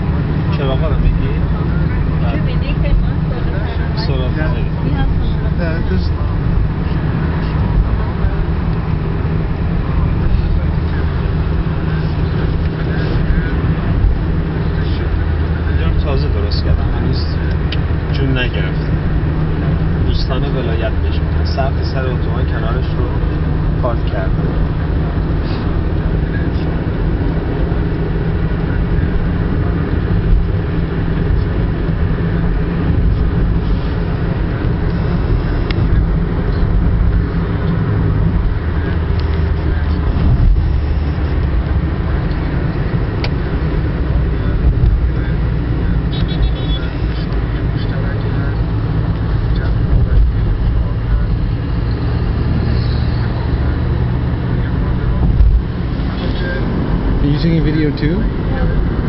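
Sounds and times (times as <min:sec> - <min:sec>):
car cabin road rumble: 0:00.0 - 0:59.0.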